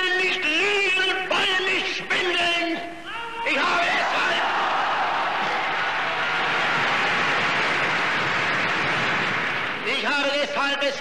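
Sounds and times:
large crowd applauding: 0:04.4 - 0:10.0
person giving a speech: 0:09.8 - 0:11.0.

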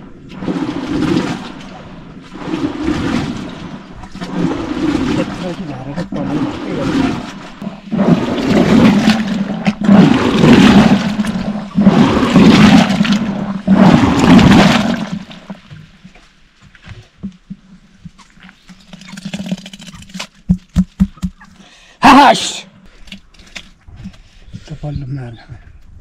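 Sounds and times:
butter churn sloshing: 0:00.3 - 0:15.6.

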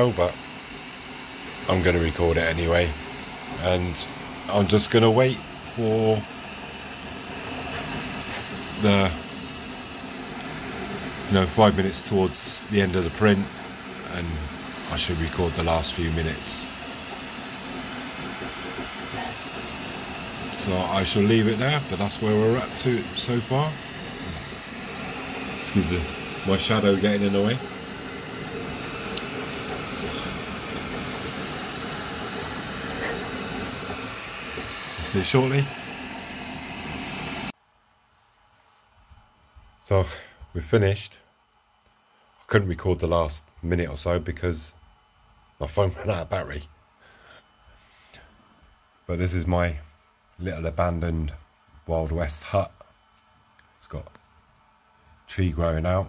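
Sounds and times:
printer fans and motors whirring: 0:00.0 - 0:37.6
faint steady tones: 0:00.0 - 0:56.0.

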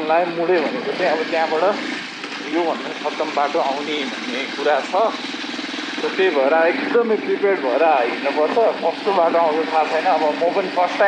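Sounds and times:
person speaking: 0:00.0 - 0:05.2
motorcycle engine idling: 0:00.0 - 0:11.0.

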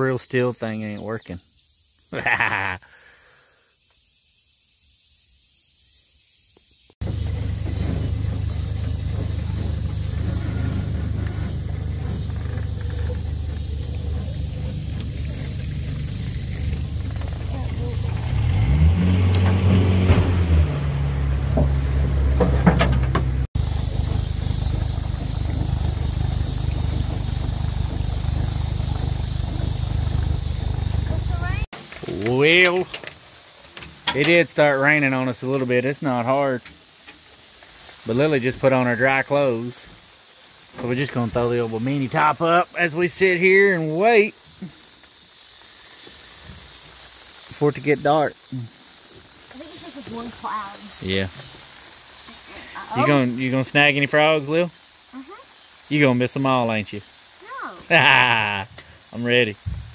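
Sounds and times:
boat motor idling: 0:07.0 - 0:19.6, 0:20.4 - 0:31.7.

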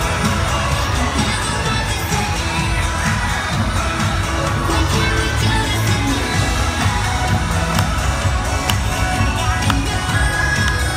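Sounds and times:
parade music over loudspeakers: 0:00.0 - 0:10.9.

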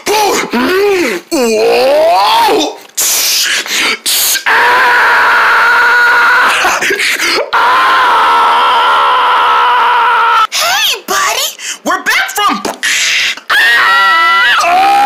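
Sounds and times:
person crying out: 0:00.0 - 0:03.5
person screaming: 0:00.0 - 0:06.8, 0:07.4 - 0:10.5, 0:12.8 - 0:15.0.

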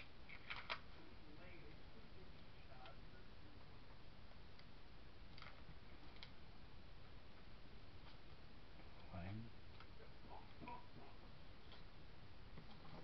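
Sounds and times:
steady low hiss: 0:00.0 - 0:13.0.

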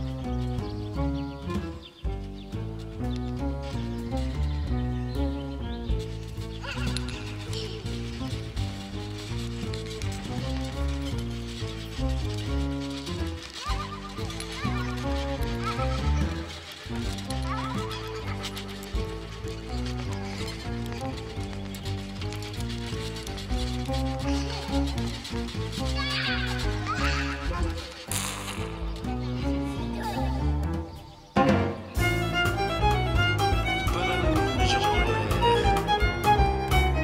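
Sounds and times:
violin with sliding glissandi: 0:32.0 - 0:37.0.

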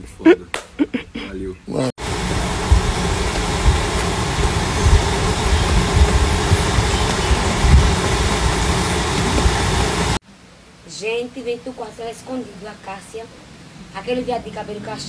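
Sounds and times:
wind buffeting microphone: 0:02.0 - 0:10.2.

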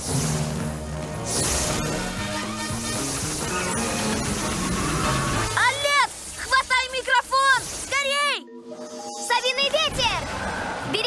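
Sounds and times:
cartoon action music: 0:01.2 - 0:08.5.

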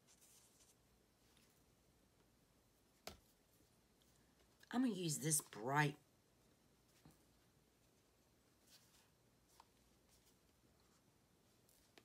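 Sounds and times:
faint scratchy rustles: 0:00.0 - 0:01.8, 0:06.8 - 0:12.0.

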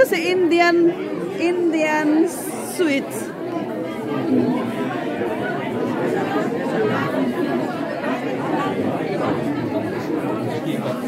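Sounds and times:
many people chatting: 0:00.0 - 0:11.0.

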